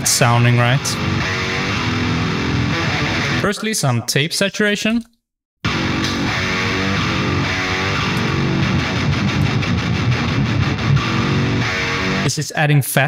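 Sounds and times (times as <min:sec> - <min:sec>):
distorted metal guitar riff: 0:00.0 - 0:03.6, 0:05.7 - 0:12.3.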